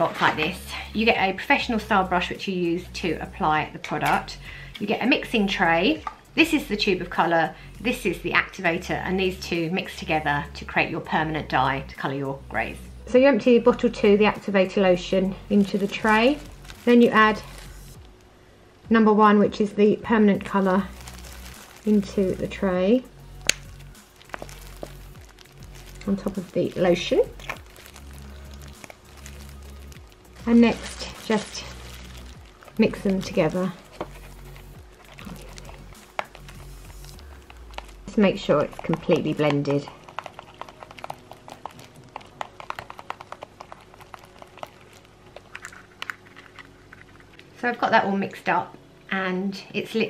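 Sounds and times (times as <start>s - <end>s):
soft background music: 0.0s - 50.0s.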